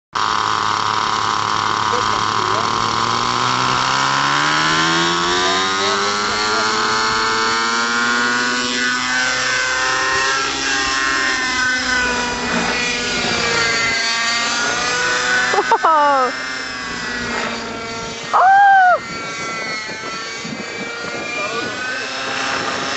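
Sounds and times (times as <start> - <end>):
model helicopter engine whine: 0.2 - 22.9
person exclaiming: 15.5 - 16.4, 18.4 - 19.0.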